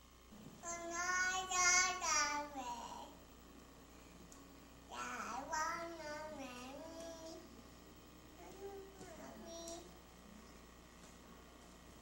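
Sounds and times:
toddler singing: 0:00.6 - 0:03.2, 0:04.9 - 0:07.5, 0:08.4 - 0:09.9.

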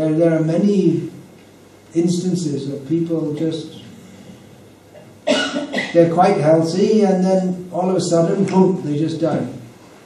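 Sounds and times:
man coughing: 0:05.0 - 0:06.1.

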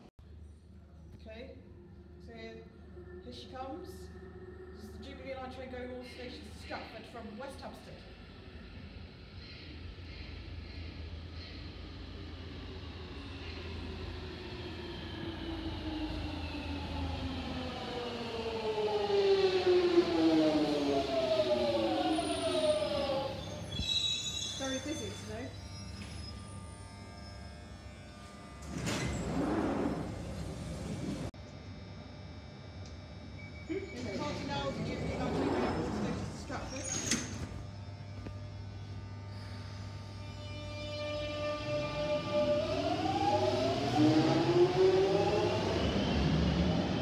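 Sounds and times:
train motor whine braking: 0:10.8 - 0:31.3, 0:32.3 - 0:47.0.

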